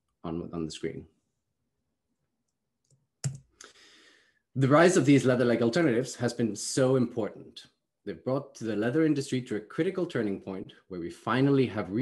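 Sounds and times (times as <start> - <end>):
faint breath drawn in: 3.6 - 4.5.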